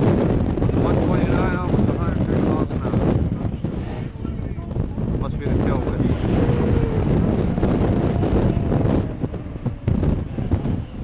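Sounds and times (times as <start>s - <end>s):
wind buffeting microphone: 0.0s - 11.0s
vehicle running: 4.4s - 11.0s.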